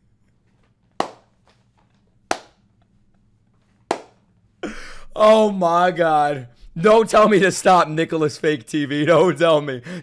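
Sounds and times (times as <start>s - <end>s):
sharp hand claps: 1.0s - 1.3s, 2.3s - 2.6s, 3.9s - 4.2s.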